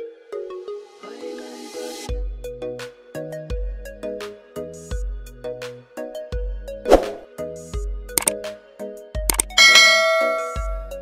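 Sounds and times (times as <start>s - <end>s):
background music with a beat: 1.8s - 11.0s
quick click effects: 9.3s - 9.6s
bright bell-like chime: 9.6s - 11.0s.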